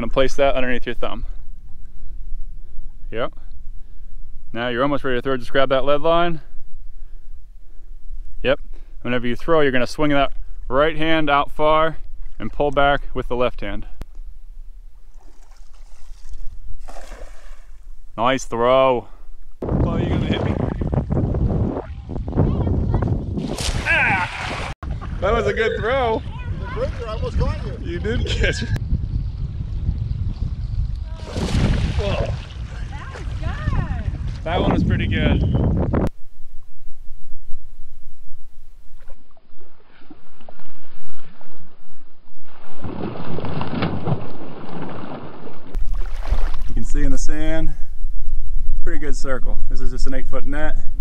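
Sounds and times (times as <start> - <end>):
net splashing into water: 15.1 - 17.8, 23.4 - 24.8, 31.2 - 32.5, 42.5 - 46.8
wind rumble on microphone: 19.5 - 44.2, 45.6 - 51.0
person shouting: 23.8 - 24.6.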